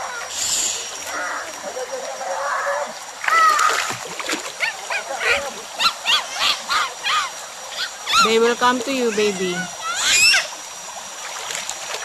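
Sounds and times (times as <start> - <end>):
water noise: 0.0 - 12.0
high animal calls: 4.6 - 8.5, 9.1 - 10.5.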